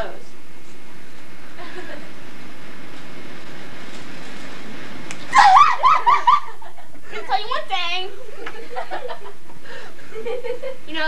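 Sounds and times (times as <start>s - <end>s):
steady hiss: 0.0s - 11.0s
high-pitched wavering yelps: 5.3s - 6.6s.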